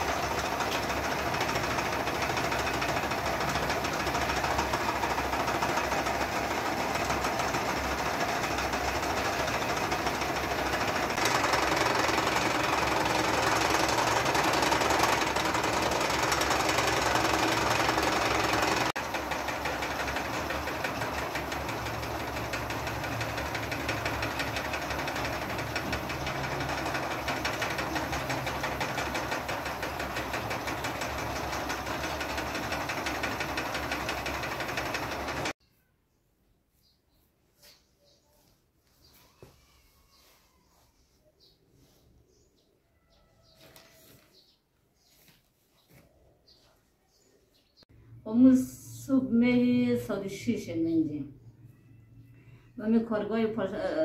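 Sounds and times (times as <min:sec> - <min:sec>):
spinning machines rattling and humming: 0:00.0 - 0:35.6.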